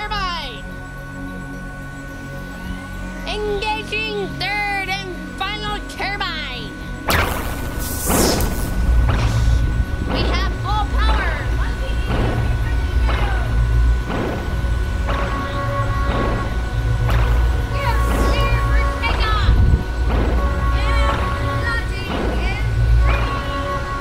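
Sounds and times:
loud low rumble: 0:05.3 - 0:24.0
sudden blast: 0:07.1 - 0:24.0
repeated crashes: 0:12.0 - 0:24.0.

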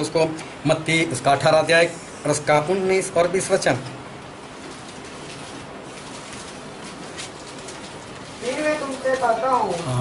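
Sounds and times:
man speaking: 0:08.4 - 0:10.0.

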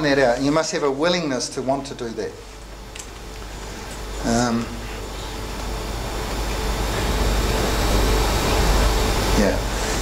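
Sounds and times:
rushing room noise: 0:00.0 - 0:10.0.

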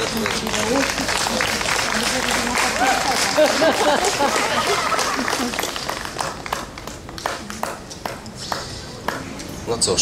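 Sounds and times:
applause: 0:00.0 - 0:09.2.

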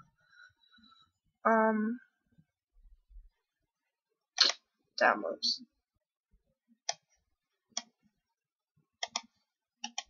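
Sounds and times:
computer mouse click: 0:06.8 - 0:07.1, 0:07.7 - 0:07.9, 0:09.0 - 0:10.0.

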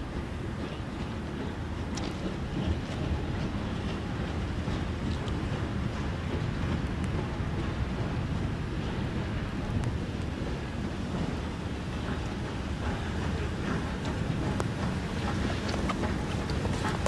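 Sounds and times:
steam locomotive rumbling: 0:00.0 - 0:17.0
wind buffeting microphone: 0:00.0 - 0:17.0.

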